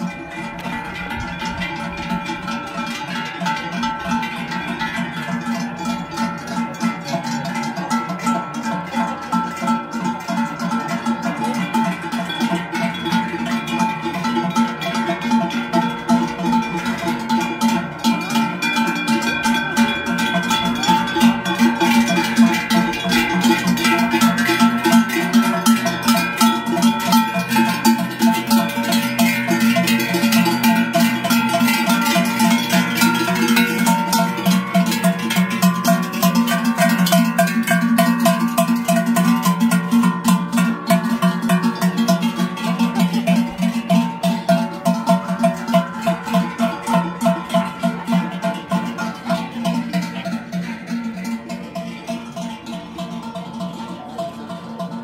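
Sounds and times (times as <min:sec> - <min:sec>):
cowbells ringing: 0:00.0 - 0:55.0.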